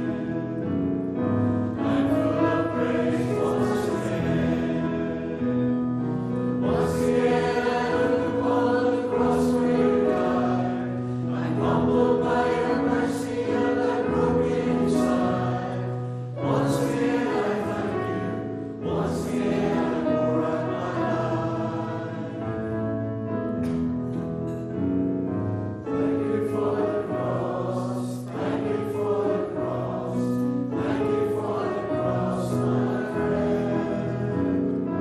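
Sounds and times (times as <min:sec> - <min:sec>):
congregation singing a hymn: 0:00.0 - 0:35.0.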